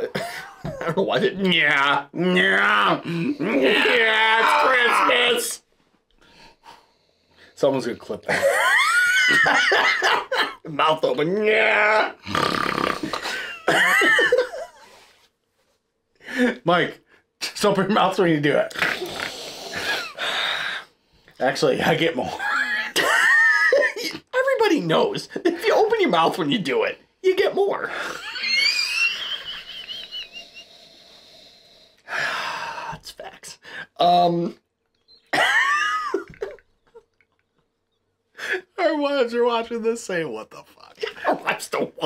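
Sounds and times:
laughter: 0.0s - 1.4s, 8.3s - 10.7s, 13.2s - 14.8s, 22.3s - 24.2s, 28.0s - 30.6s, 35.3s - 37.4s
man's high-pitched wheezing laughter: 8.3s - 10.4s, 27.9s - 30.8s
man breathing in loudly: 30.4s - 32.9s.

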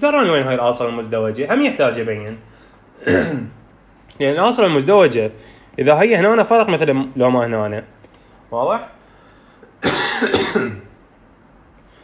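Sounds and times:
man coughing: 3.0s - 3.6s, 9.8s - 10.9s.

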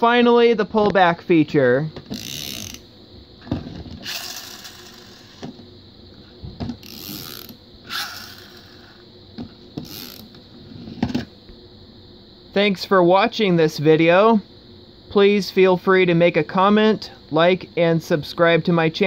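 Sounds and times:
toy car spring motor whirring: 2.1s - 2.9s, 4.0s - 5.5s, 6.8s - 9.0s, 9.8s - 10.4s.

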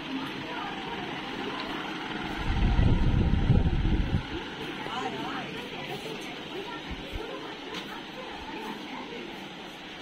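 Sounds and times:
low rumble buffeting microphone: 2.2s - 4.6s.

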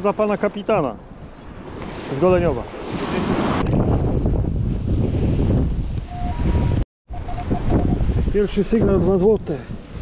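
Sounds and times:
wind buffeting microphone: 1.0s - 10.0s
metal detector beeps: 6.1s - 8.0s.

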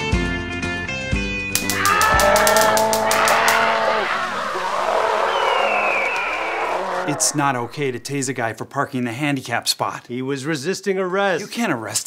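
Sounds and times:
music: 0.0s - 3.0s
stun gun crackling: 1.6s - 5.0s
man yelling: 1.6s - 6.2s
noisy wash with falling squeal: 3.0s - 8.3s.

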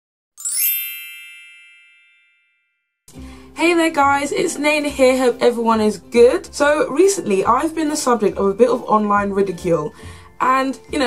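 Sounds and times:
bright chime ringing: 0.4s - 2.9s.

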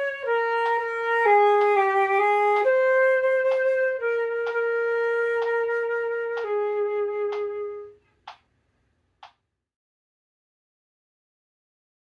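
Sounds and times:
flute holding long notes: 0.0s - 8.0s.

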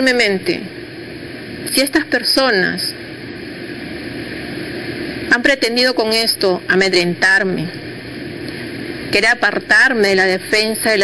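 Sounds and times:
background hiss and hum: 0.0s - 11.0s.

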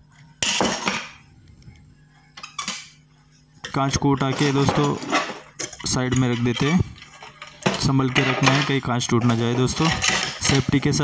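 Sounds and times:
metallic scrape and clatter: 4.2s - 11.0s.

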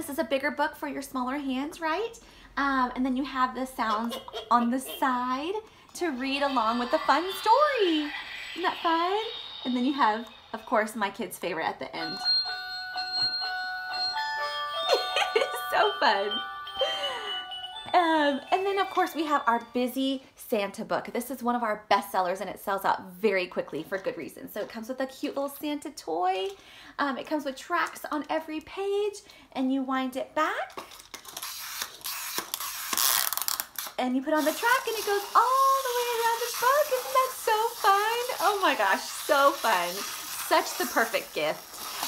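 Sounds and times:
wind-up toy spring whirring: 6.0s - 12.2s, 31.2s - 42.0s
tinny electronic jingle: 6.1s - 19.8s.

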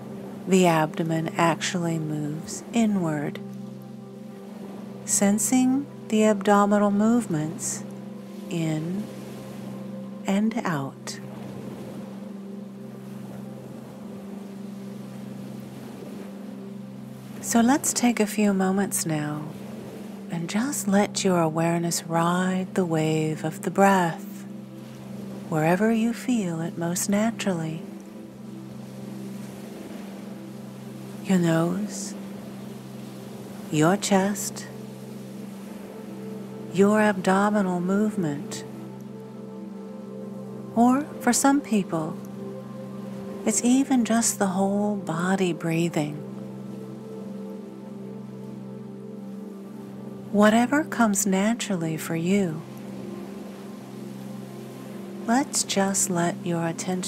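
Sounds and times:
ambient music drone: 0.0s - 57.0s
low drone of held tones: 34.7s - 50.5s.

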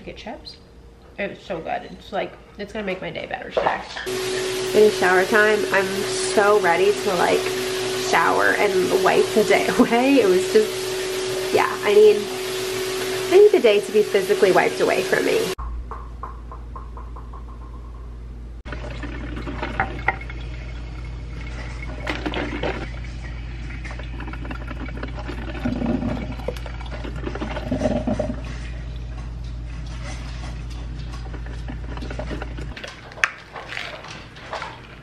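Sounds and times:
shower water running: 4.0s - 15.6s, 18.6s - 35.0s
low hum: 4.1s - 32.8s
bumps and knocks: 15.6s - 18.4s.

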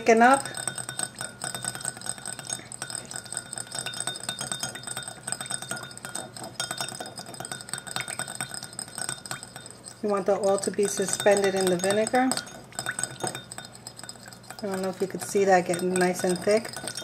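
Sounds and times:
whisk clinking in glass bowl: 0.0s - 17.0s.

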